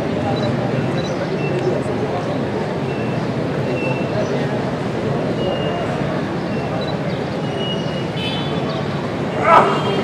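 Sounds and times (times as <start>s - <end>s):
faint voices: 0.0s - 10.0s
traffic noise: 0.0s - 10.0s.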